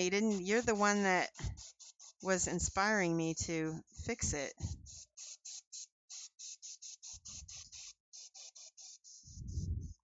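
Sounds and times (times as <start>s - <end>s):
airbrush hissing bursts: 0.0s - 9.7s.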